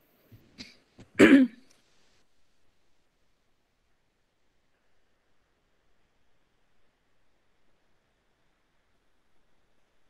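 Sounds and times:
woman clearing her throat: 0.6s - 1.6s.

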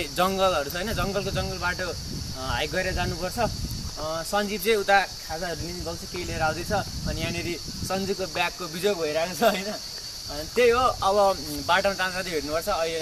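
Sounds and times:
insects chirping in trees: 0.0s - 13.0s
man talking: 0.0s - 13.0s.

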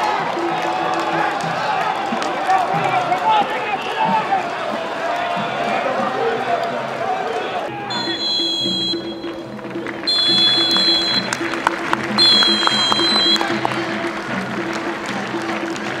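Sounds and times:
referee's whistle blasts: 7.7s - 9.4s, 10.0s - 11.6s, 12.2s - 13.8s.

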